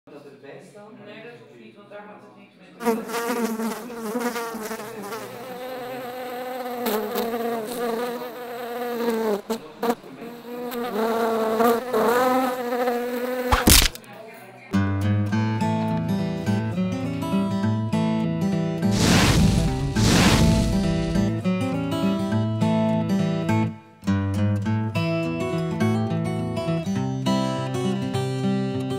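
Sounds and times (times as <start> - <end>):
housefly buzzing: 2.9 - 9.6, 10.2 - 14.0, 18.9 - 21.4
sharp smack: 13.5 - 14.0, 18.9 - 21.4
rushing swell: 18.9 - 21.4.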